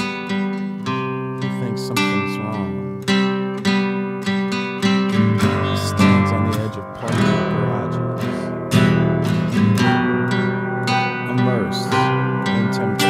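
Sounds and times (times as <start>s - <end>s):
acoustic guitar strumming chords: 0.0s - 13.0s
sliding guitar notes: 0.0s - 13.0s.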